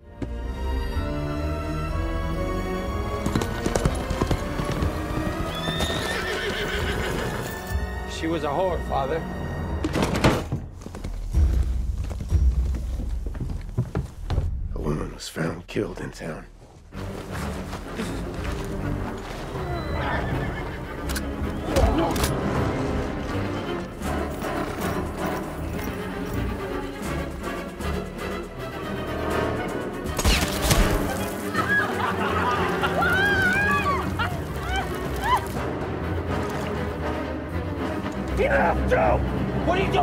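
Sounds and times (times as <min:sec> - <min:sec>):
film score music: 0:00.0 - 0:40.0
horse hooves clip-clopping: 0:02.8 - 0:07.7, 0:10.6 - 0:14.5, 0:16.9 - 0:19.8
horse whinnying: 0:03.8 - 0:07.7, 0:19.5 - 0:22.3.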